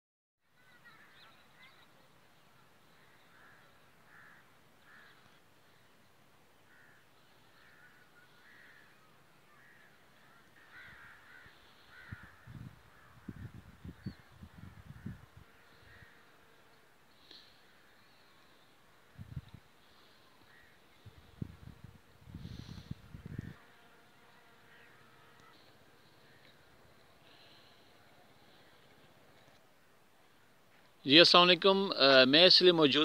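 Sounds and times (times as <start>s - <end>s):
faint birds calling: 0.6s - 31.1s.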